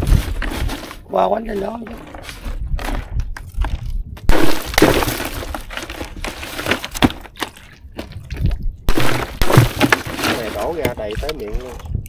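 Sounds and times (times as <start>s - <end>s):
ice crunching and clinking: 1.8s - 11.9s.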